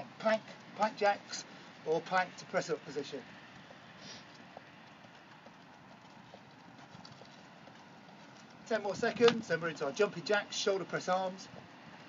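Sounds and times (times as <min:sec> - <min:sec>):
faint outdoor background noise: 0:00.0 - 0:12.0
trainers tapping on paving: 0:02.0 - 0:11.8.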